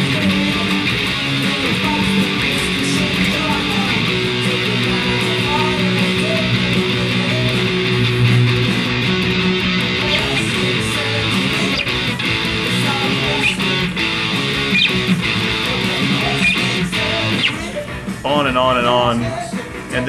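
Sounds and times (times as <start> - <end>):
bass: 0.0 - 20.0
drums: 0.0 - 20.0
electric guitar rock chords: 0.0 - 20.0.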